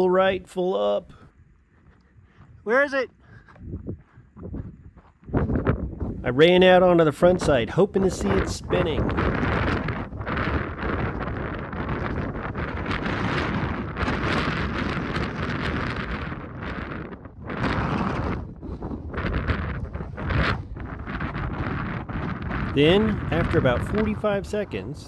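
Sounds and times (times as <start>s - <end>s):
gusty wind buffeting microphone: 0.0s - 25.0s.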